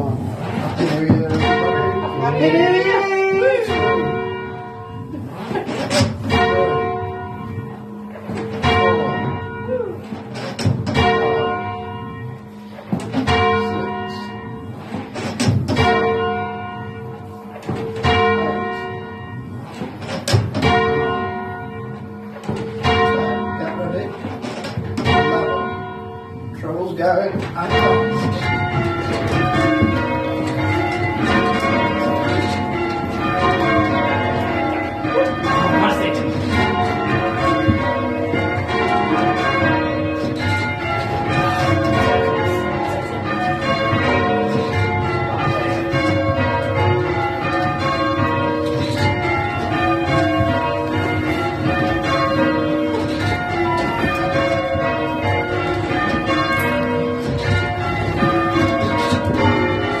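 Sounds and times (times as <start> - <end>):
church bells change ringing: 0.0 - 60.0.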